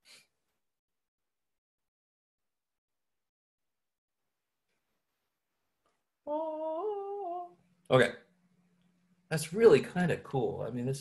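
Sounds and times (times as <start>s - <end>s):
person humming: 6.3s - 7.6s.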